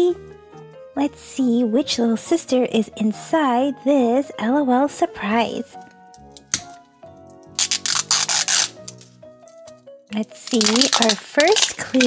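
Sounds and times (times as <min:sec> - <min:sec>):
background music: 0:00.0 - 0:12.0
plastic wrapper crinkling: 0:07.5 - 0:09.2, 0:10.2 - 0:12.0.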